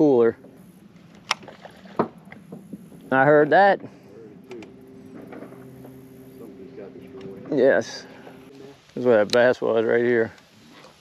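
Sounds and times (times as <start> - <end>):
electric motor humming: 0.4 - 8.6.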